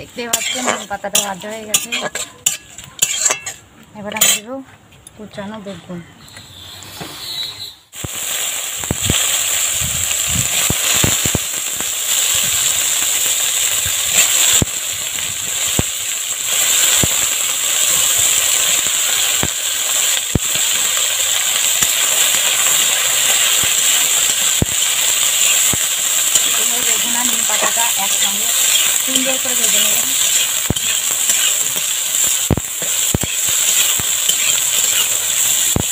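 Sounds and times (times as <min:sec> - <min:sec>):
vegetables sizzling in hot oil: 0:00.0 - 0:04.5, 0:07.9 - 0:35.9
spatula scraping wok: 0:00.0 - 0:05.0, 0:05.7 - 0:07.8, 0:16.5 - 0:35.9.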